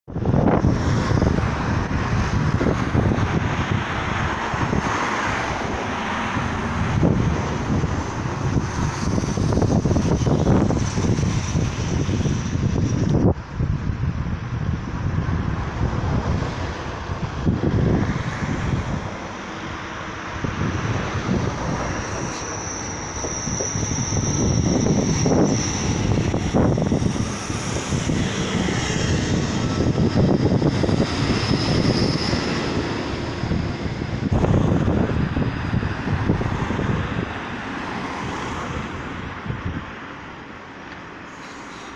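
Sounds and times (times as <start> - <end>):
wind buffeting microphone: 0.1 - 40.4
train running: 0.2 - 41.9
faint high whine: 19.8 - 35.2.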